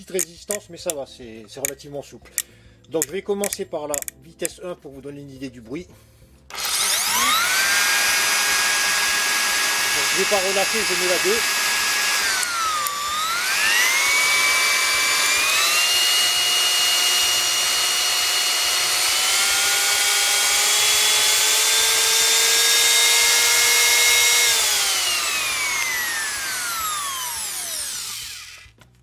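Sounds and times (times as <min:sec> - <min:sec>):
wood router motor whining: 0:06.5 - 0:28.9.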